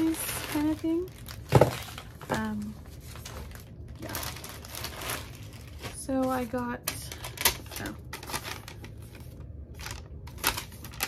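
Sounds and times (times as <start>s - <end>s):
packaging crinkling and rustling: 0.0s - 11.0s.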